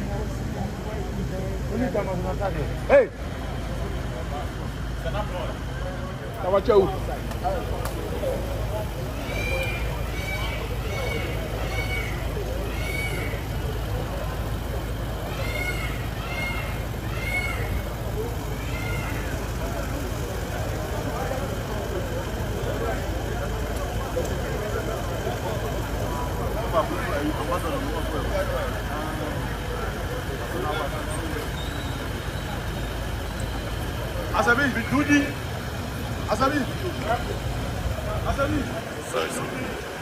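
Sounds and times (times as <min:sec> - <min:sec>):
crowd chatter: 0:00.0 - 0:40.0
high rising and falling call: 0:09.1 - 0:13.7.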